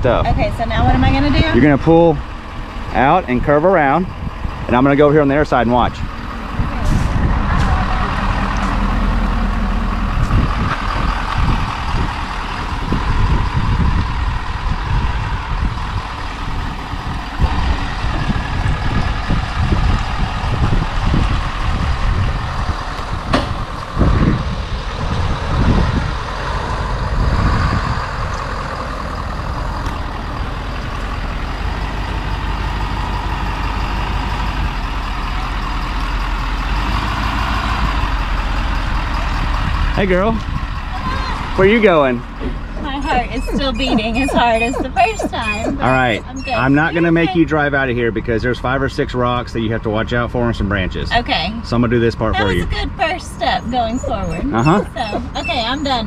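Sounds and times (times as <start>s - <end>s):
pickup engine running under load: 0.0s - 56.0s.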